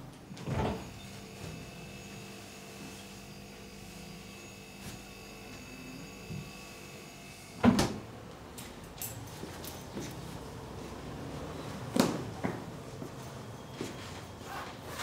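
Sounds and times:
refrigerator electrical hum: 0:00.0 - 0:15.0.

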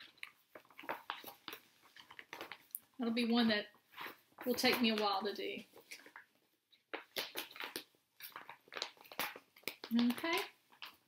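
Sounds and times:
fabric rustling and crinkling: 0:00.0 - 0:11.0.

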